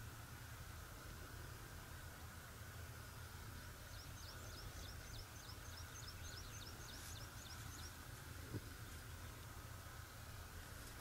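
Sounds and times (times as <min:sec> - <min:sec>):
outdoor background noise: 0:00.0 - 0:11.0
songbird singing: 0:00.5 - 0:11.0.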